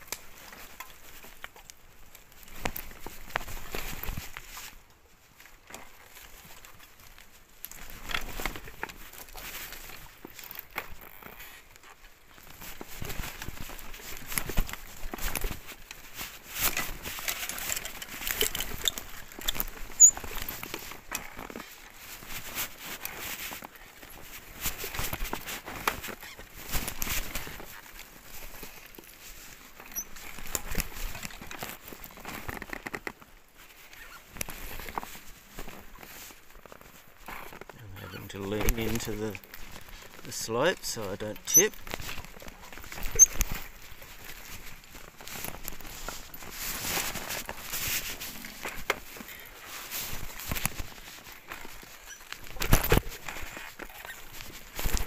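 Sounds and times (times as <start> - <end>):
tyres crunching over dirt: 0.1 - 55.0.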